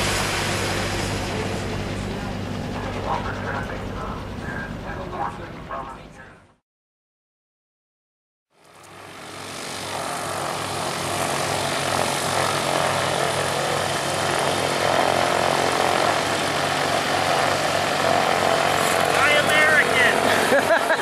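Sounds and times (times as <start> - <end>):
engine running with pulsing beat: 0.0 - 6.6.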